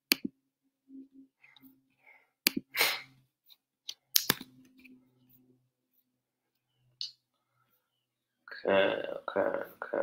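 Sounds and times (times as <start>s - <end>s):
sharp clicks: 3.9s - 4.5s.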